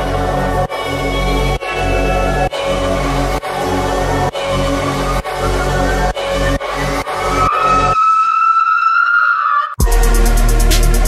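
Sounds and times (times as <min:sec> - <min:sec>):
electronic bass and beat: 0:09.8 - 0:11.0.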